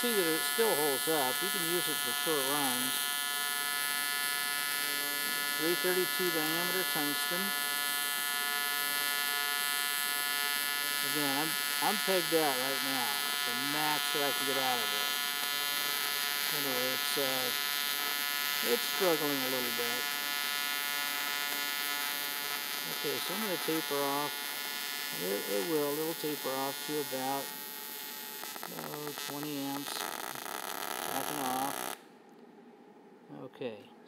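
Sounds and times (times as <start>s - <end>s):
welding arc buzzing: 0.0s - 32.1s.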